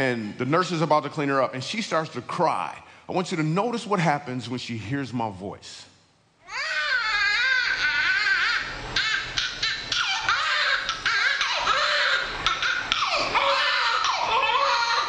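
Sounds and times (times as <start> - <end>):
newborn baby crying: 6.4 - 15.0.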